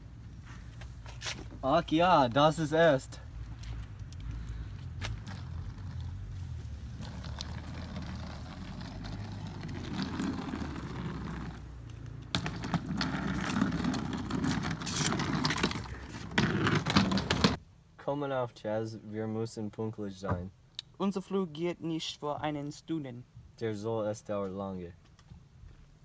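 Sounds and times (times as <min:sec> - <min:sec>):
suitcase wheels rattling on concrete: 0:05.1 - 0:17.6.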